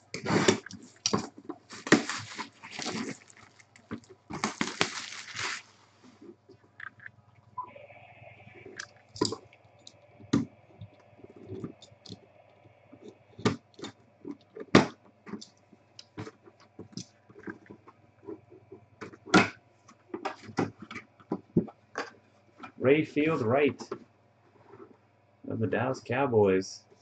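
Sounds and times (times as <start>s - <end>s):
faint steady hum: 0.0s - 27.0s
cardboard box being opened: 0.2s - 5.8s.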